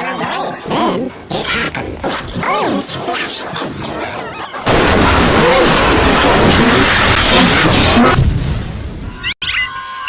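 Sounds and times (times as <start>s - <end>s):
dense rush of noise: 4.7s - 8.8s.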